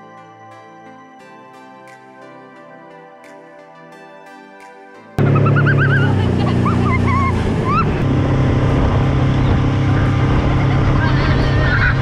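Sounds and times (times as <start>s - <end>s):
boat wake rushing: 5.2s - 12.0s
outboard motor running: 5.2s - 12.0s
people shrieking and laughing: 5.3s - 8.0s, 10.9s - 12.0s.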